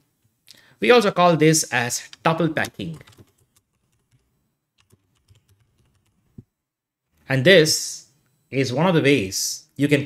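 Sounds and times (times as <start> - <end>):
computer keyboard typing: 2.0 - 6.3.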